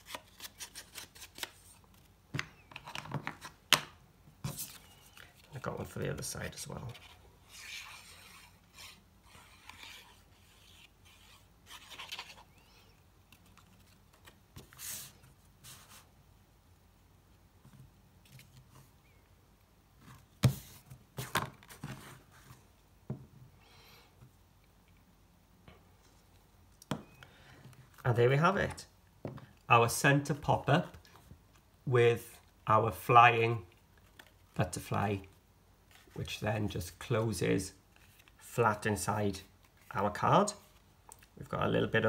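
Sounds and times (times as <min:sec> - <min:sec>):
paper rustling and scraping: 0:04.4 - 0:12.8.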